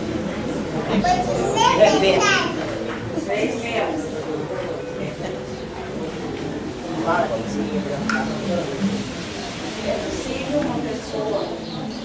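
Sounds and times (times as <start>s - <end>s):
child's high-pitched voice: 0.9s - 2.6s.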